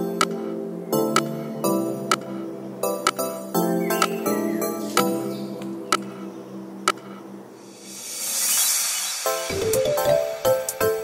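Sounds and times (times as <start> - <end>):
background music: 0.0 - 11.0
hot water pouring hiss: 7.7 - 9.5.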